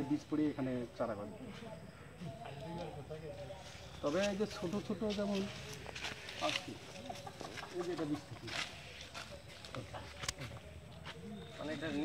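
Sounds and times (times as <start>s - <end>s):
men talking: 0.0s - 12.0s
footsteps on dry leaves: 3.6s - 12.0s.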